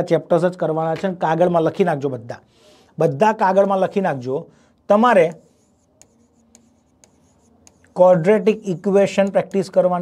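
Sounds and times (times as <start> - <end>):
pen scratching on board: 5.2 - 8.9
pen tapping on board: 5.9 - 8.0.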